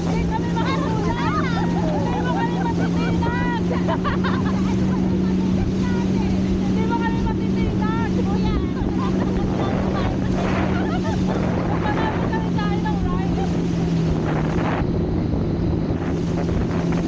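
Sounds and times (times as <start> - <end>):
motorboat engine drone: 0.0 - 17.0
water rushing: 0.0 - 17.0
wind on microphone: 0.0 - 17.0.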